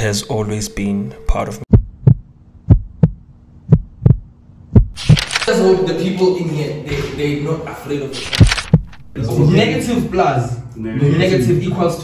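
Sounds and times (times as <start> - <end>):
deep heartbeat-like thumps: 1.7 - 5.1, 8.4 - 9.1.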